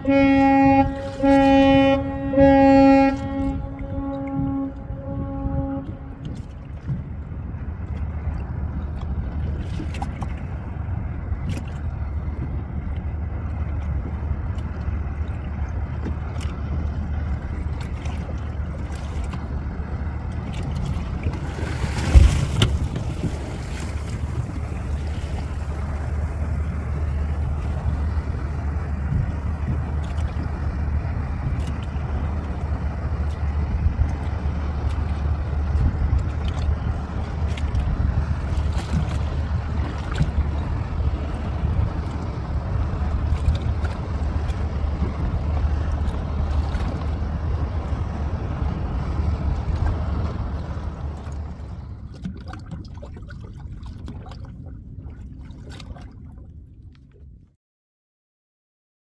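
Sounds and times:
wind on microphone: 0:00.0 - 0:56.5
boat engine rumbling: 0:00.0 - 0:57.6
water noise: 0:00.0 - 0:57.6.

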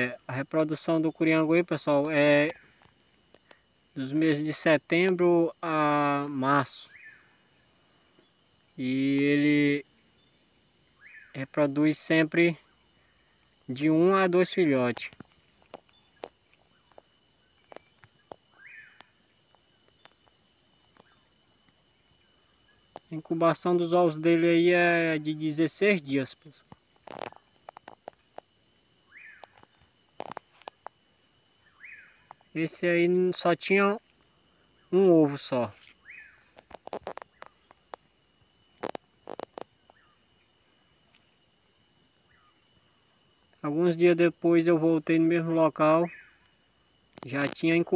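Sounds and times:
crickets chirring: 0:00.0 - 0:47.9
sharp clicks and crackles: 0:36.5 - 0:38.0.

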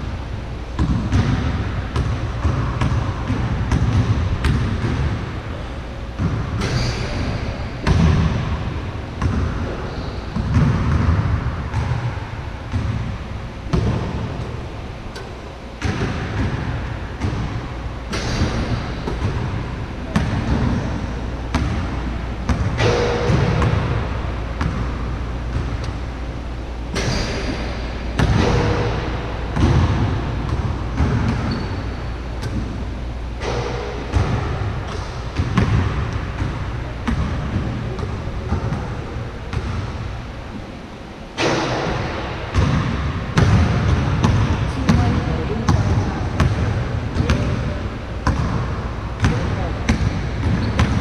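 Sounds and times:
steady low rumble: 0:00.0 - 0:51.0
basketball bouncing on hard court: 0:00.8 - 0:05.3, 0:06.2 - 0:26.1, 0:27.0 - 0:32.8, 0:33.4 - 0:40.0, 0:41.4 - 0:51.0.

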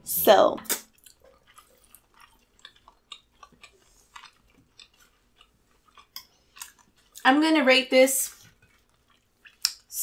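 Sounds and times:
chewing food: 0:00.8 - 0:10.0.

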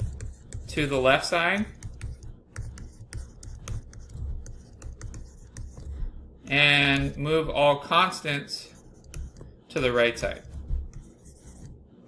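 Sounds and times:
stylus clicks and taps: 0:01.6 - 0:05.9, 0:09.0 - 0:09.6.

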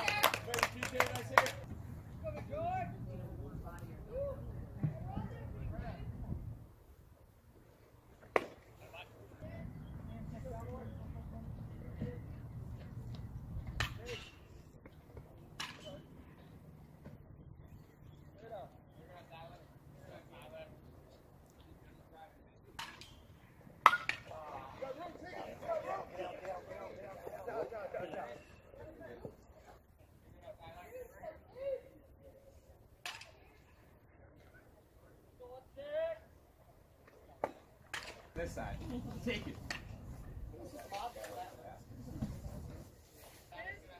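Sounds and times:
distant voices: 0:00.0 - 0:31.0
faint background noise: 0:00.0 - 0:43.9.

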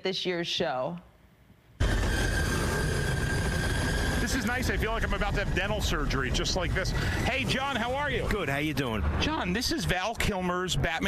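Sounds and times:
sustained high tone: 0:01.8 - 0:08.5
loud steady low rumble: 0:01.8 - 0:11.0.

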